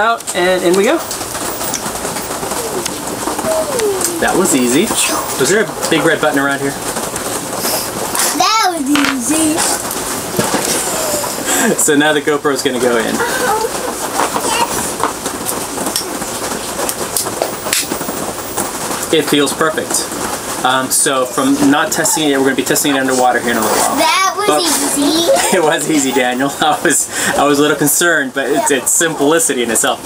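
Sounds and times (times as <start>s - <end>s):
rain hissing: 0.2s - 30.0s.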